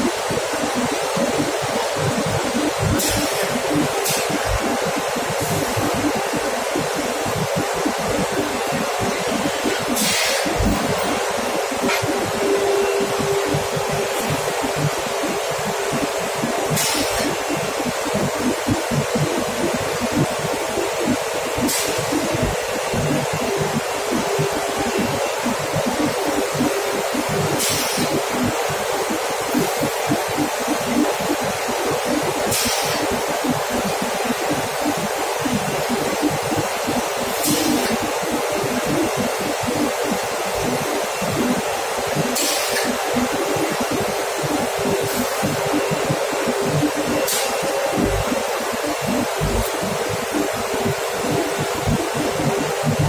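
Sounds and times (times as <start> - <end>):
industrial machinery rushing and humming: 0.0 - 53.0.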